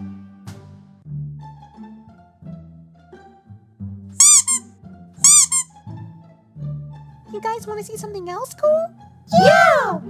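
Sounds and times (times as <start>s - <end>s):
cello and pizzicato music: 0.0s - 10.0s
high-pitched warbling squeaks: 4.2s - 4.6s, 5.3s - 5.7s.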